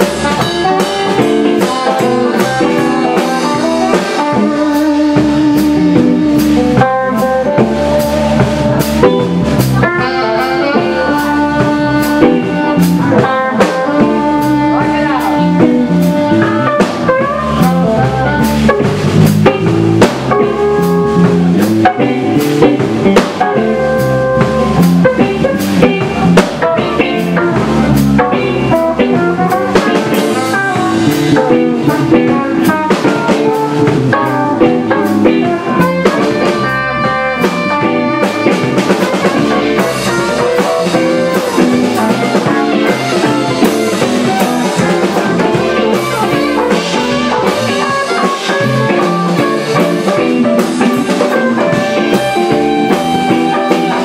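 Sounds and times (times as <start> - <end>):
lead guitar bending notes: 0.0 - 54.0
live rock band playing: 0.0 - 54.0.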